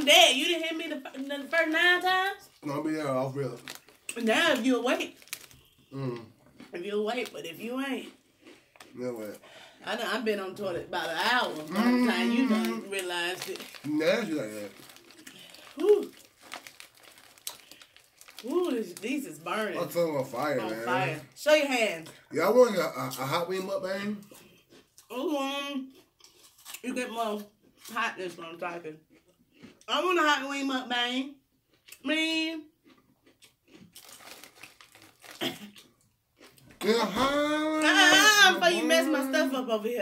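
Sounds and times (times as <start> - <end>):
foil snack bag crinkling: 0.0 - 2.7, 3.4 - 5.8, 10.9 - 21.2, 33.8 - 35.8
loud crackle: 13.0 - 19.2.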